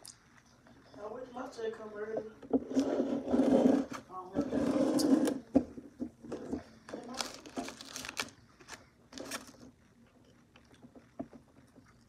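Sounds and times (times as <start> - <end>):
soft eating clicks: 8.2 - 12.0.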